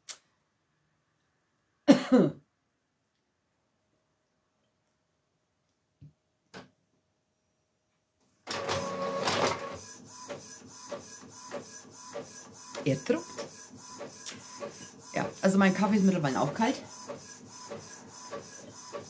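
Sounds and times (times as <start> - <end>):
inkjet printer whirring and clicking: 8.5 - 19.0.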